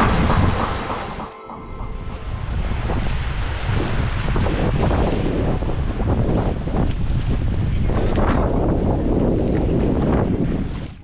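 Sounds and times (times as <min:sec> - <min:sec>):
wind buffeting microphone: 0:01.7 - 0:11.0.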